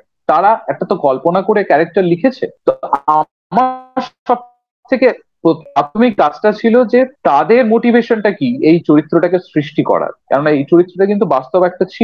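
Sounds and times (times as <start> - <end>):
man speaking over video call: 0.0 - 12.0.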